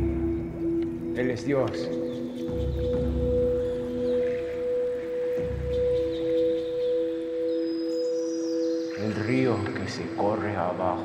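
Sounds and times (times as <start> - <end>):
meditative music with ringing tones: 0.0 - 11.0.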